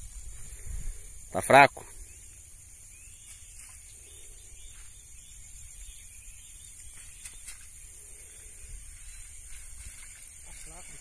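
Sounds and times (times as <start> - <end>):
wind rumbling on microphone: 0.0 - 1.3, 7.0 - 11.0
steady high-pitched hiss: 0.0 - 11.0.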